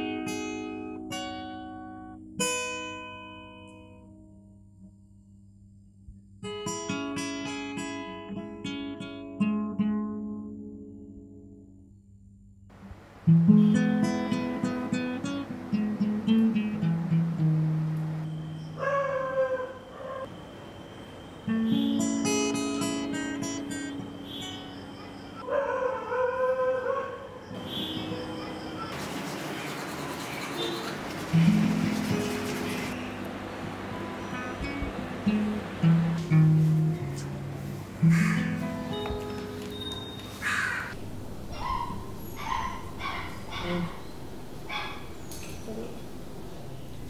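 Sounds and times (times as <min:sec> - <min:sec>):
crow cawing: 0:38.0 - 0:38.8, 0:40.0 - 0:44.1, 0:44.7 - 0:45.1
drawn-out falling whine: 0:40.9 - 0:47.0.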